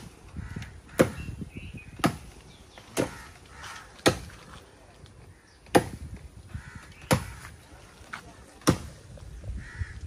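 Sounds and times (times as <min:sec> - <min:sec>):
blade chopping tree branch: 0:00.8 - 0:01.3, 0:01.9 - 0:04.6, 0:05.6 - 0:06.2, 0:06.9 - 0:07.5, 0:08.1 - 0:09.1.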